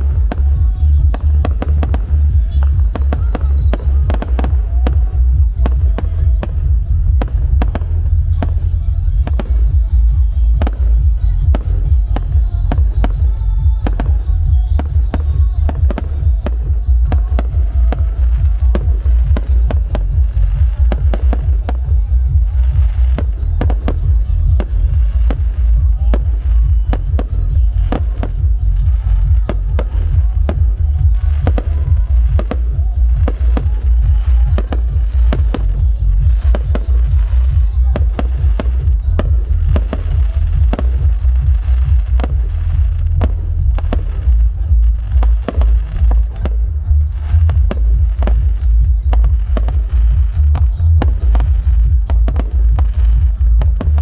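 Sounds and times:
deep rumble: 0:00.0 - 0:54.0.

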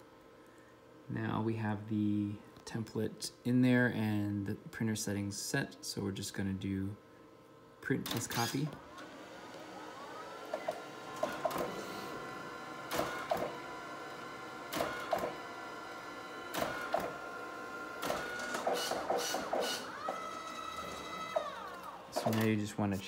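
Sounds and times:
printer motor whine: 0:08.1 - 0:22.9.

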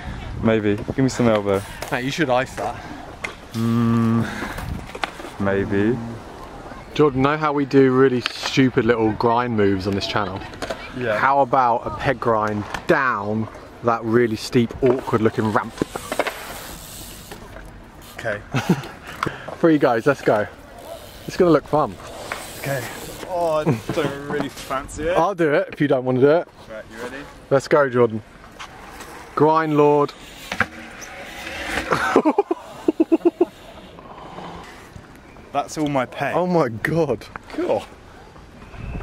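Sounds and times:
outdoor background hiss: 0:00.0 - 0:39.0
brief vocal sound: 0:03.5 - 0:04.3
man exclaiming: 0:03.5 - 0:04.3
man laughing: 0:03.5 - 0:04.4, 0:18.5 - 0:19.2, 0:31.9 - 0:33.6
bike tyres rolling over concrete: 0:14.2 - 0:24.8, 0:28.4 - 0:34.0.

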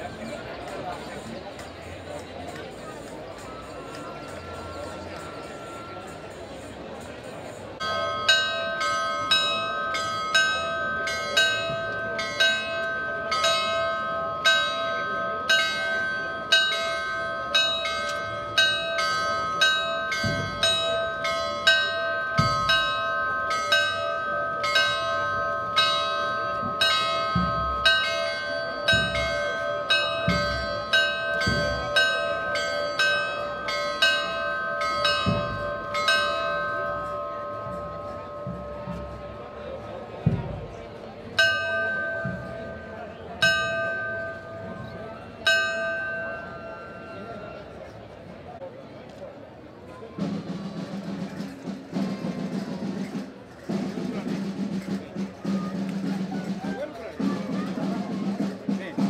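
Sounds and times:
church bells pealing: 0:02.6 - 0:48.0.

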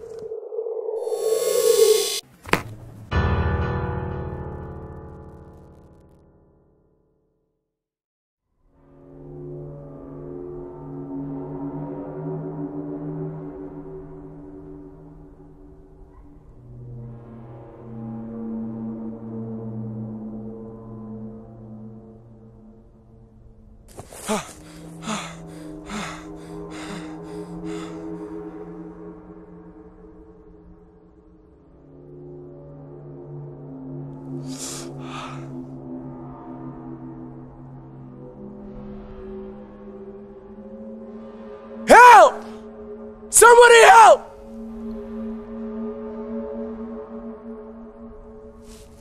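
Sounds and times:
low music drone: 0:08.8 - 0:41.8
man breathing hard: 0:23.9 - 0:28.5, 0:34.4 - 0:35.6
man gasping: 0:24.1 - 0:28.0, 0:34.5 - 0:35.4.

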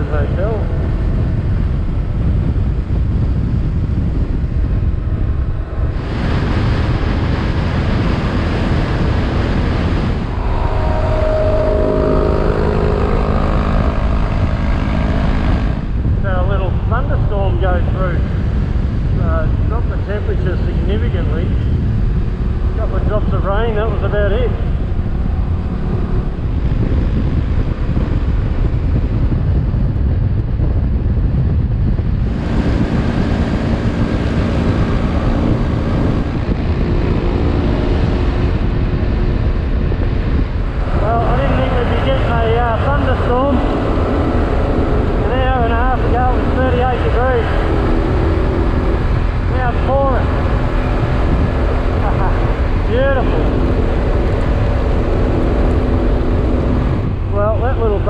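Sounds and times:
motorcycle engine running: 0:00.0 - 0:58.0
wind rushing on microphone: 0:00.0 - 0:58.0.

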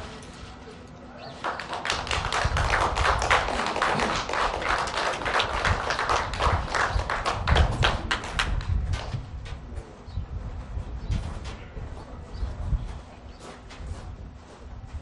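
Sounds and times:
crowd applause: 0:01.2 - 0:08.7.

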